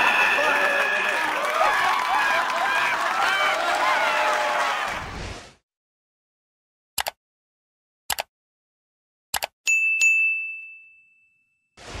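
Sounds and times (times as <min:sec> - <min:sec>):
notification bell ding: 0:09.7 - 0:11.8.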